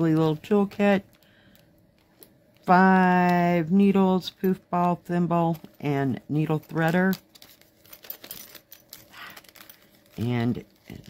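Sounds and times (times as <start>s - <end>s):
plastic packet crinkling: 5.4s - 11.0s.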